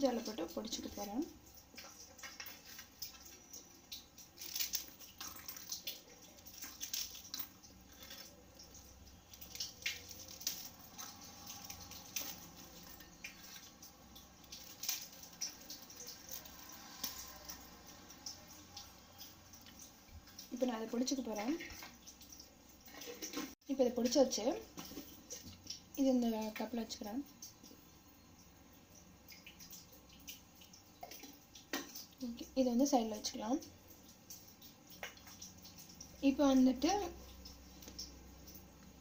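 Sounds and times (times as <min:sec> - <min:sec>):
dry rusks snapping: 0:03.9 - 0:13.6, 0:14.2 - 0:17.6.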